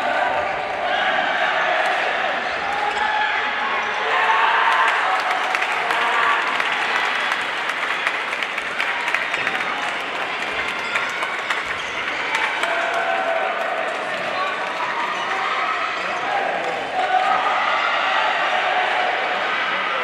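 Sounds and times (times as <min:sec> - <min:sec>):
many voices: 0:00.0 - 0:20.0
people clapping: 0:04.4 - 0:19.1.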